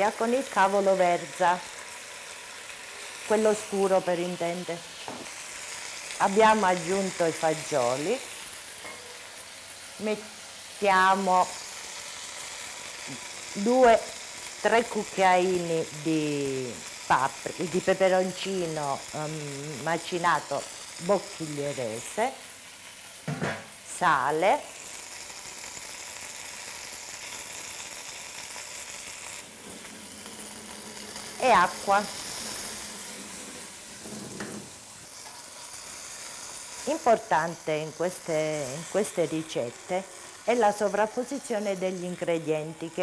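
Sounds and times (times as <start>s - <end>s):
food sizzling in oil: 0.0s - 43.0s
person speaking: 31.4s - 32.2s.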